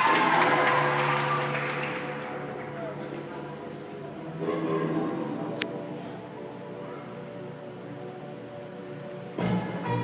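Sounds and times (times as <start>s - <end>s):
spectators cheering and clapping: 0.0s - 2.7s
music with held notes: 0.6s - 10.0s.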